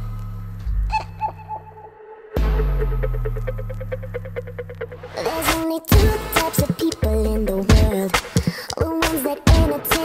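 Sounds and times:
low synth chord: 0.0 - 5.2
swooping downward-bending synth notes: 0.0 - 5.3.

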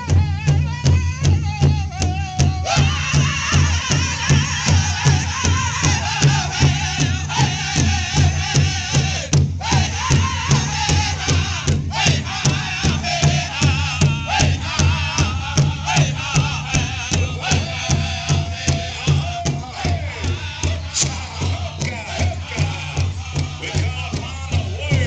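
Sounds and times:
large drum beating: 0.0 - 25.0
men singing in unison: 0.0 - 25.0.

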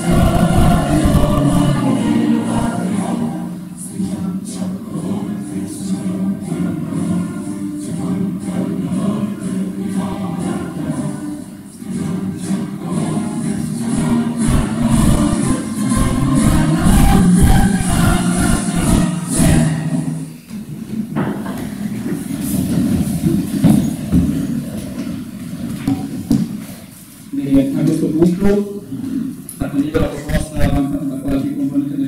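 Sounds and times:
music over sound system: 0.0 - 3.7, 12.9 - 20.4, 24.5 - 26.4
people and chairs shuffling: 20.0 - 31.4.

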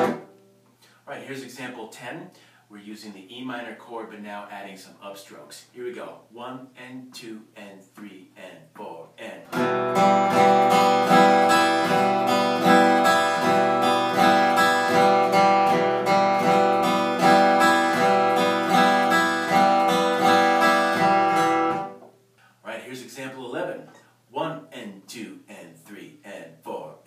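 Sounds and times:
acoustic guitar strumming: 0.0 - 0.7, 9.4 - 22.2
person counting in: 4.7 - 9.6, 22.6 - 27.0.

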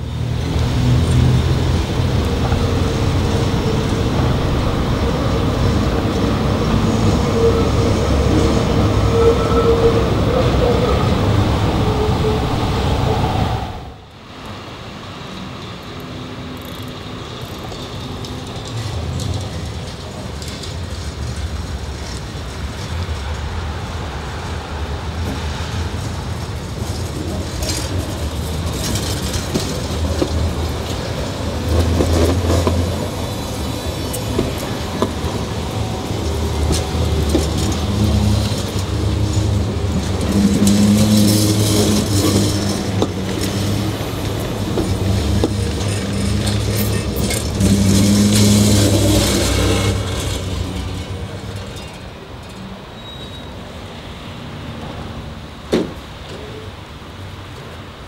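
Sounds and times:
steel wheels rumbling on rail: 0.0 - 58.0
tram electric hum: 0.0 - 58.0.

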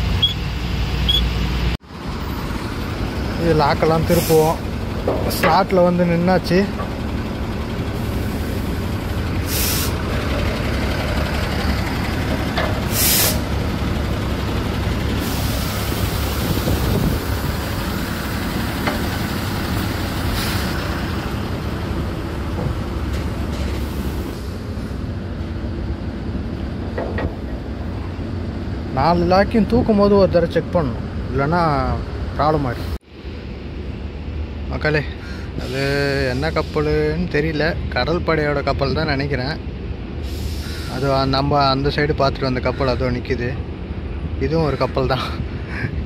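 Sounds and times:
diesel truck engine idling: 0.0 - 46.0
air brake hissing: 4.1 - 4.7, 9.4 - 10.1, 12.7 - 13.6, 15.2 - 17.2, 19.2 - 21.0, 23.5 - 25.1, 40.2 - 41.1.

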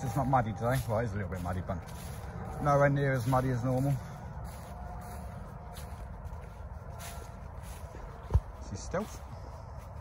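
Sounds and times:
footsteps on dry leaves: 0.0 - 10.0
steady low rumble: 0.0 - 10.0.

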